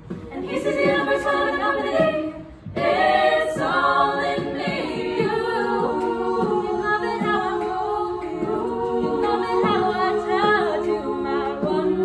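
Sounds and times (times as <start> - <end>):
women singing a cappella: 0.0 - 12.0.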